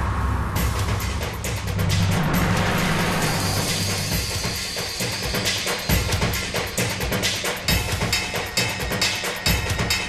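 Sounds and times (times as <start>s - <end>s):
dramatic background score: 0.0s - 8.6s.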